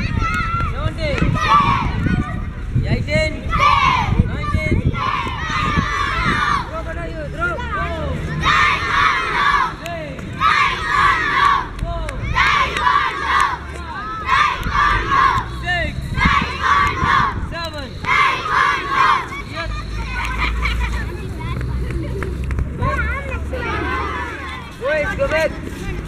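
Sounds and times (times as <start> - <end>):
children shouting in unison: 0.0 - 2.5, 3.4 - 4.2, 4.9 - 6.7, 8.2 - 9.8, 10.4 - 15.5, 18.1 - 20.7, 23.5 - 24.6.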